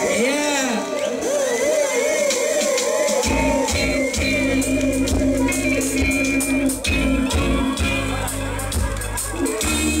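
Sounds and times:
dub music: 0.0 - 10.0.

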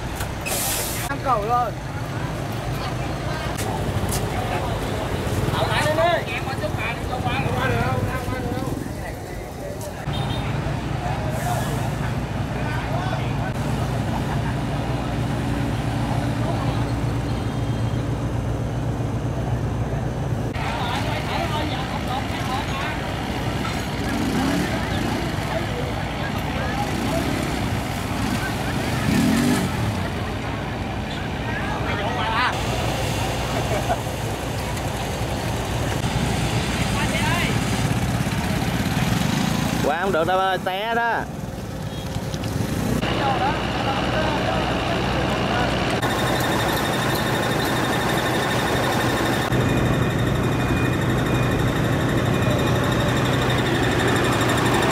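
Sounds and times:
road traffic rumble: 0.0 - 54.9
vehicle engines idling: 0.0 - 54.9
indistinct voices talking: 19.1 - 42.2, 43.0 - 54.9.

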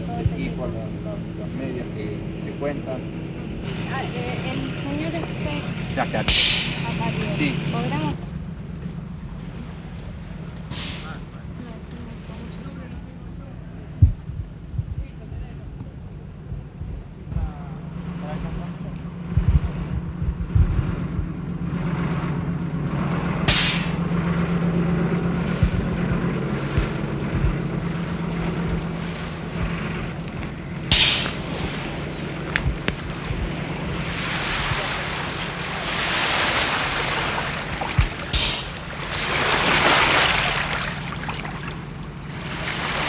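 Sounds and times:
steady low hum: 0.0 - 43.0
wind buffeting microphone: 0.0 - 43.0
water washing at shore: 22.9 - 43.0.

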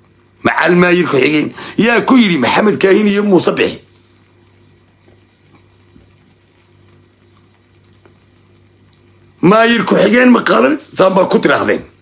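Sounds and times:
low steady hum: 0.0 - 12.0
faint clicks: 5.0 - 9.2.

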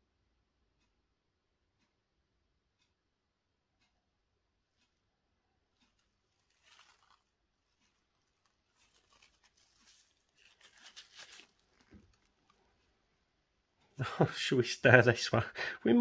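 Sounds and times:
rustling and crinkling handling: 5.7 - 13.2.

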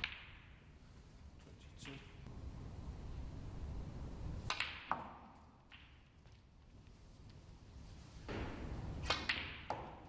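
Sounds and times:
snooker balls clicking: 0.0 - 0.6, 4.4 - 7.4.

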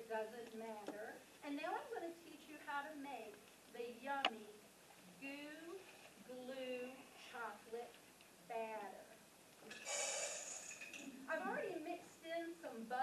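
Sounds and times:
woman speaking: 0.0 - 9.2, 11.3 - 13.0.

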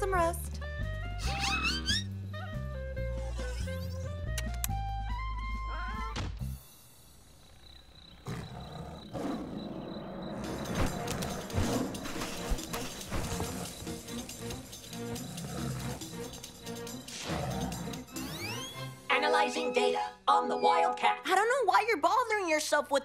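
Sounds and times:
cartoon music: 1.2 - 6.2, 17.9 - 21.2
night rustling: 6.8 - 15.2.

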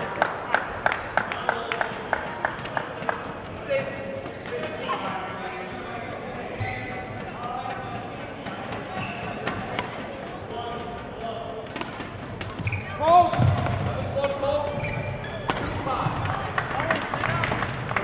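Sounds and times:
footwork on court: 11.7 - 18.0
short loud squeal: 12.6 - 13.2.

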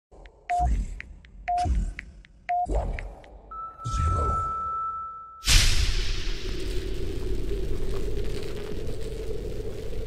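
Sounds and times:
high ticks: 0.1 - 3.5
beep with low boom: 0.5 - 0.9, 1.5 - 1.9, 2.5 - 5.6.

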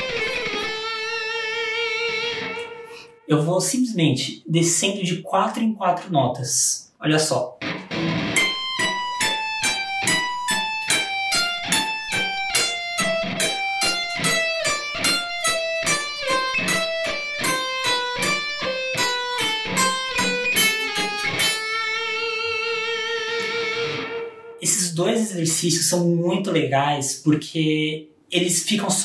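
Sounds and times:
electric guitar picked notes: 0.0 - 3.3, 7.6 - 24.7.

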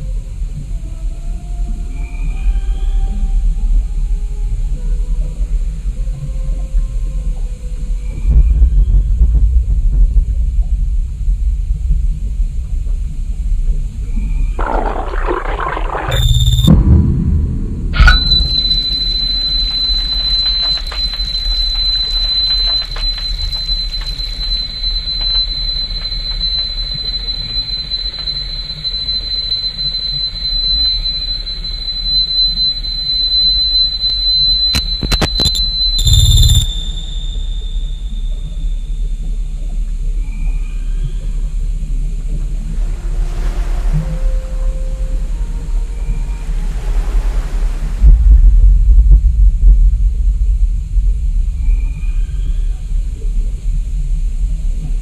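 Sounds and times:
low rumbling drone: 0.0 - 21.4, 34.8 - 55.0
thin high-pitched whine: 14.0 - 47.4
rush of scratchy noise: 14.6 - 19.0
sharp hit: 14.6 - 19.6
eerie horror film soundtrack: 16.2 - 54.8.

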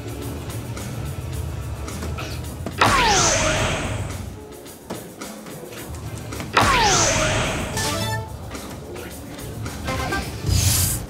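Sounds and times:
synthesized falling tone effect: 6.8 - 8.4.

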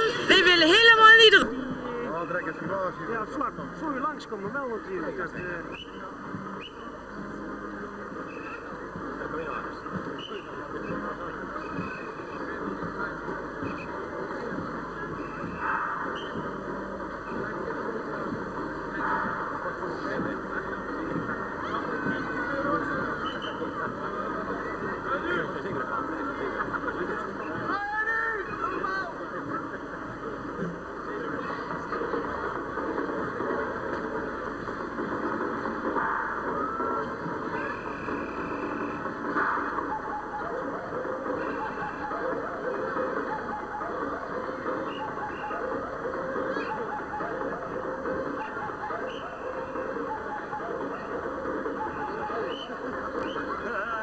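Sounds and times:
crowd chattering: 0.0 - 54.0.

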